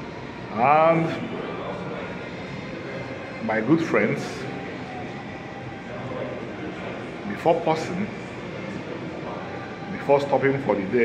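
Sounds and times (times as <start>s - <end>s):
ventilation drone: 0.0s - 11.0s
man speaking: 0.5s - 1.3s.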